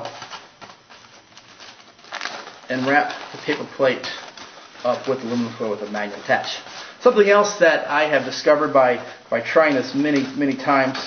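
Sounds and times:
aluminum foil crinkling: 0.0s - 11.0s.

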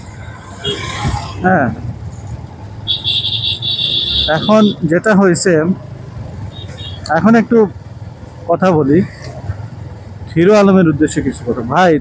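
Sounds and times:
motorcycle engine and road rumble: 0.0s - 12.0s.

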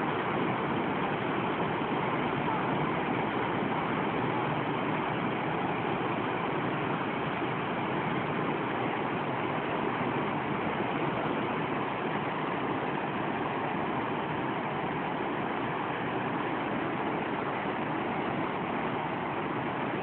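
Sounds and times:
water rushing through sluices: 0.0s - 20.0s.

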